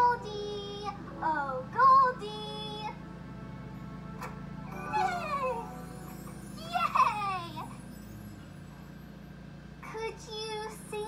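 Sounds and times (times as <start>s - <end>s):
child singing: 0.0s - 3.0s, 9.8s - 11.0s
steady low hum: 0.0s - 11.0s.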